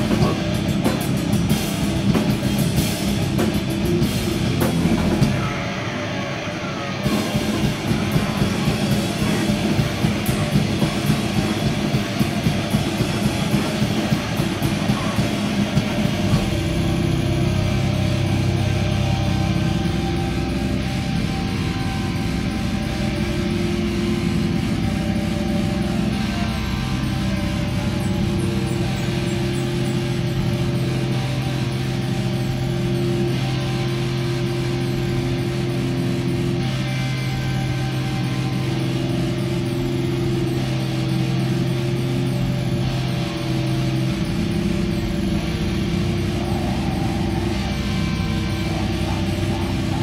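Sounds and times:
rapid drumming: 0:00.0 - 0:05.8, 0:07.0 - 0:50.0
amplified feedback drone: 0:00.0 - 0:50.0
distorted guitar: 0:00.0 - 0:50.0.

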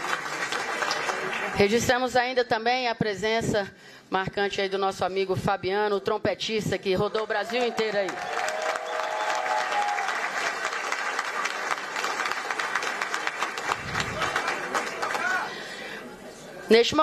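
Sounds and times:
audience applauding: 0:00.0 - 0:01.6, 0:07.5 - 0:15.7.

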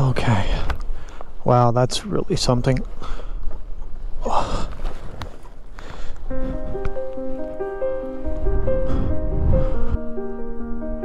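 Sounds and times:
wind rumbling on microphone: 0:00.0 - 0:11.0
sustained keyboard music: 0:06.3 - 0:11.0.

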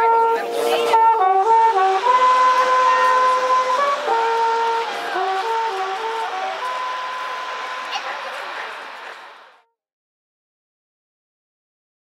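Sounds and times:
wind band playing held note: 0:00.0 - 0:09.7.

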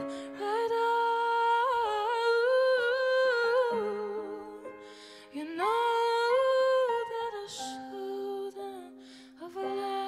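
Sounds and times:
woman singing long wordless note: 0:00.0 - 0:10.0.

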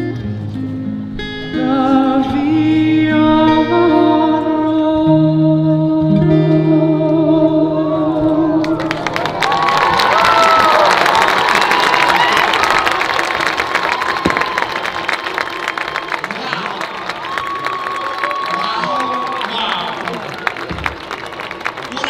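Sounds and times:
crowd cheering and whooping: 0:07.8 - 0:22.0
crowd clapping: 0:08.6 - 0:22.0.

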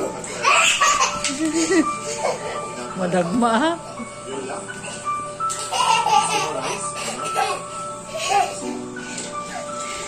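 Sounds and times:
background music: 0:00.0 - 0:10.0
child laughing: 0:00.4 - 0:02.5, 0:05.6 - 0:08.6.

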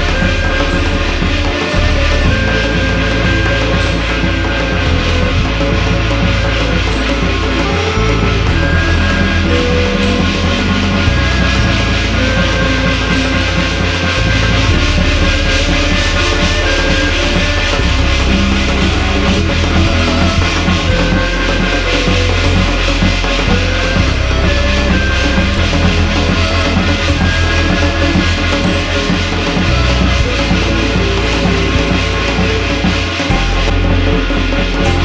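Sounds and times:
loud ritual music: 0:00.0 - 0:35.0.

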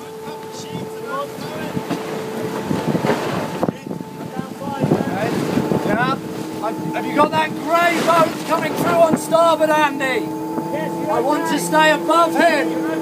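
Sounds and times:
faint crew voices: 0:00.0 - 0:13.0
water rushing past hull: 0:00.0 - 0:13.0
wind buffeting microphone: 0:00.0 - 0:13.0.

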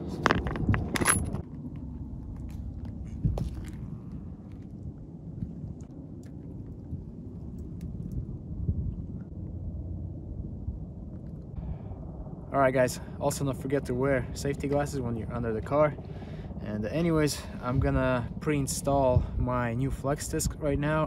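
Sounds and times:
wind rumble on microphone: 0:00.0 - 0:21.0.

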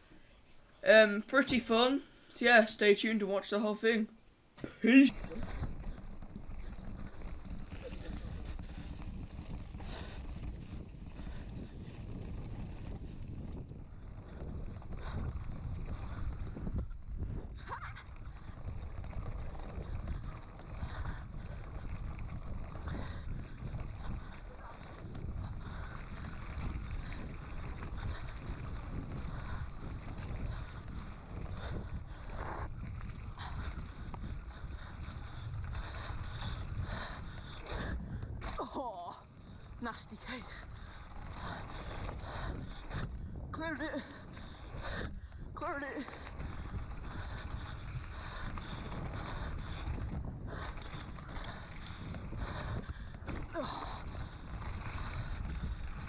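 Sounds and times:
wind buffeting microphone: 0:05.1 - 0:56.0.

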